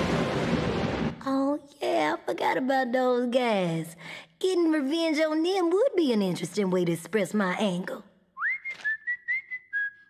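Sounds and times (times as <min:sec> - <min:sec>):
person whistling a tune: 0:08.4 - 0:10.0.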